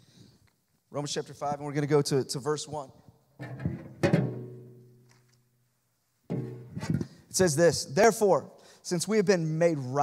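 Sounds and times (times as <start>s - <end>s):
person speaking: 6.8s - 10.0s.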